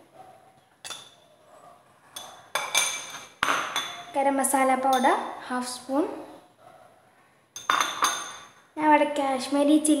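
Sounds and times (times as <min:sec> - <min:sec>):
spoons clinking against ceramic bowls: 0:00.8 - 0:01.2, 0:02.2 - 0:04.2, 0:04.8 - 0:05.2, 0:07.6 - 0:08.6.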